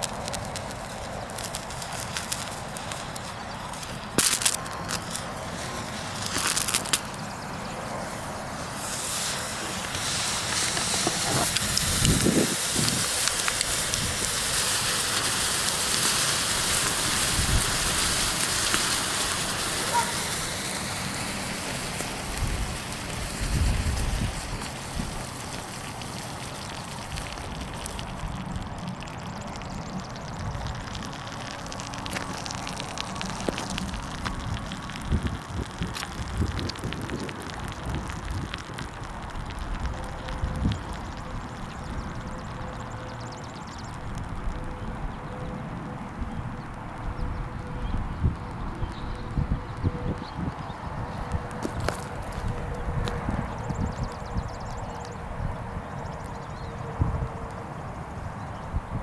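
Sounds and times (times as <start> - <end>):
faint crackles and ticks: 0.0 - 7.9, 8.8 - 44.8, 46.1 - 57.7
thermite burning with hiss and crackle: 0.0 - 59.0.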